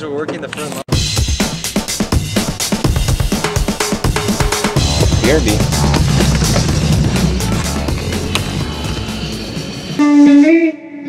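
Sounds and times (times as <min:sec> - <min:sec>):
background music: 0:00.9 - 0:10.2
electric guitar notes bending: 0:03.5 - 0:10.5
low rumble: 0:04.0 - 0:10.0.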